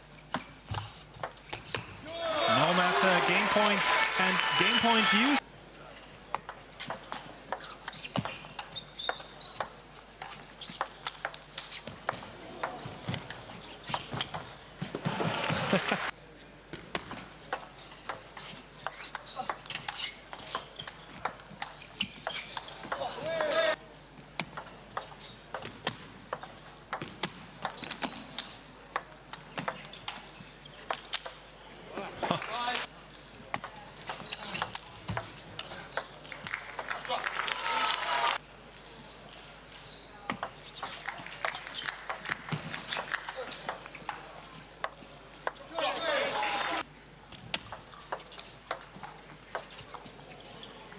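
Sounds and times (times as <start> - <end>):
crowd shouting and cheering: 2.1 - 5.4, 15.0 - 16.1, 36.6 - 38.4, 45.7 - 46.8.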